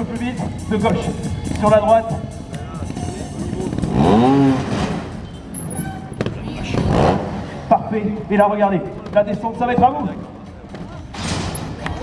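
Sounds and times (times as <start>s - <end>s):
motorcycle engine revving: 2.7s - 9.5s.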